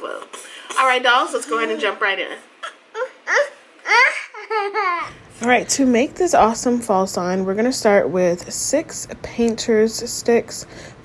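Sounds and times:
young child laughing: 2.6 - 5.2.

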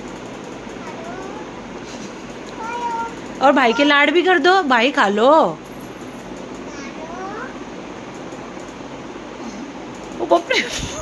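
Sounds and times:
child whining: 0.8 - 1.5, 2.6 - 3.2.

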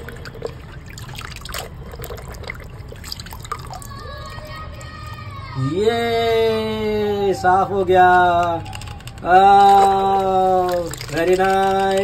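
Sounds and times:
water dripping: 0.0 - 5.3, 8.3 - 12.0
toy splashing in water: 0.0 - 5.4, 8.1 - 12.0.

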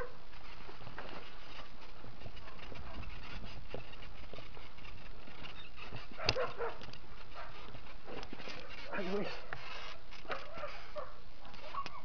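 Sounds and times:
bike rattling over rocks: 0.3 - 10.6.

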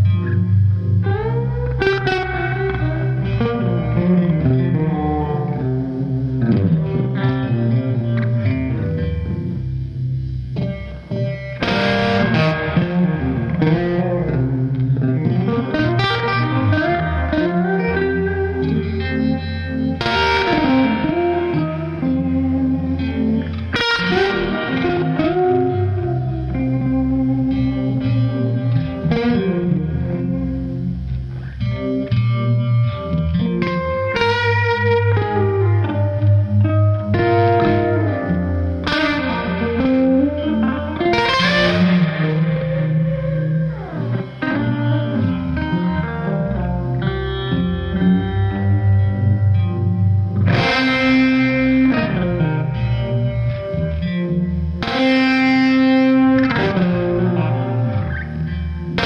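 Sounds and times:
electric guitar playing blues chords: 0.0 - 59.0.

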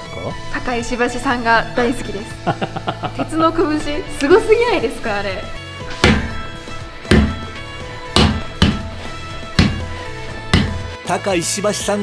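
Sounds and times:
background music with sustained tones: 0.0 - 12.0
punches thudding on wooden board: 5.9 - 10.9.

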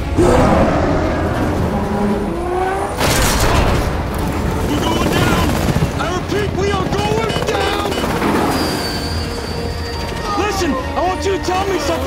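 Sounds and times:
helicopter engines and rotors: 0.0 - 12.0.

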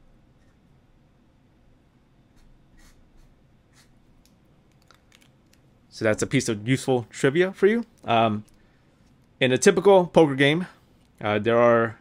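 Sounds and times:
pen nib scratching on paper: 2.3 - 4.0.

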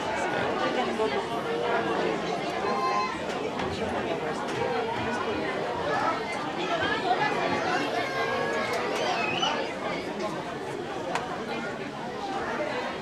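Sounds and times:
crowd of people chattering: 0.0 - 13.0.

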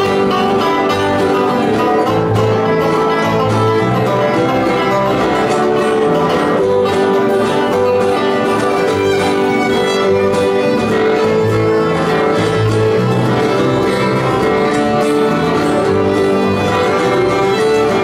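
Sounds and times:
acoustic guitar: 0.0 - 18.0
banjo: 0.0 - 18.0
bass guitar: 0.0 - 18.0
fiddle: 0.0 - 18.0
mandolin: 0.0 - 18.0.

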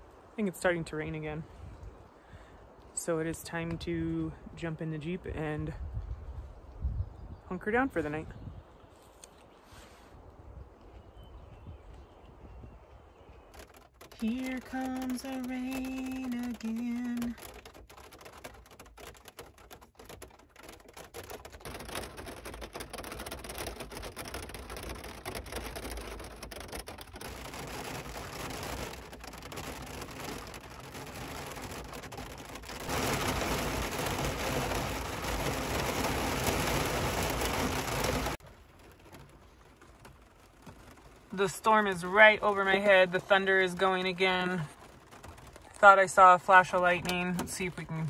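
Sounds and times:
rain on a car: 13.3 - 48.0
raindrops ticking on glass: 13.4 - 48.0.

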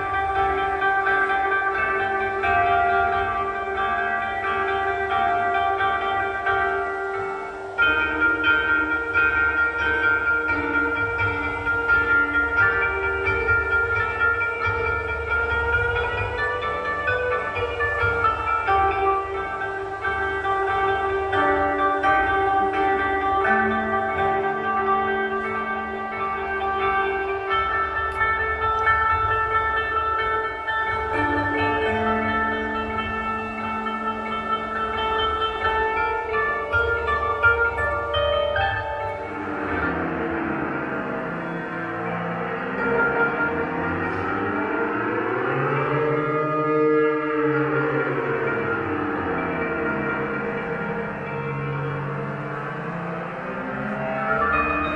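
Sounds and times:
processed koto drone: 0.0 - 54.9
zither plucked notes: 0.0 - 54.9.

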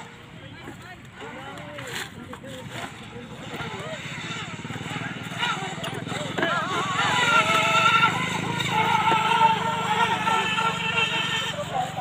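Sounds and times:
electric boat motor whine: 0.0 - 12.0
people talking: 0.3 - 12.0.

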